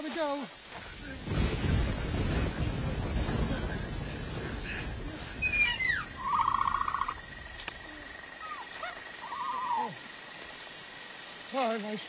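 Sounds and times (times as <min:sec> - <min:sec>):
heavy rain hiss: 0:00.0 - 0:12.0
creature chirping and warbling: 0:05.4 - 0:07.2.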